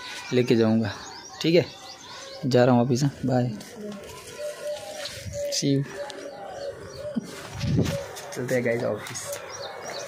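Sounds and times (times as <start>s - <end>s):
doves cooing: 0.8s - 10.0s.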